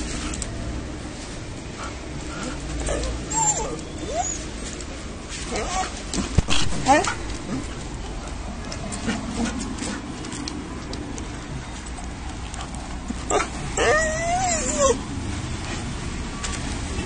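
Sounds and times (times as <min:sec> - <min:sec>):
dog whining and whimpering: 0:02.8 - 0:04.6, 0:05.5 - 0:06.0, 0:13.3 - 0:15.1.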